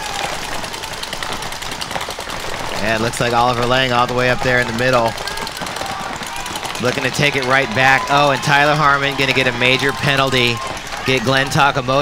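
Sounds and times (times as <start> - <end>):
paintball markers firing: 0.0 - 11.9.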